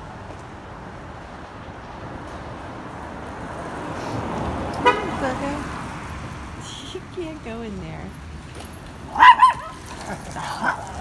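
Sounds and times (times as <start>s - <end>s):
dog barking: 9.1s - 9.8s.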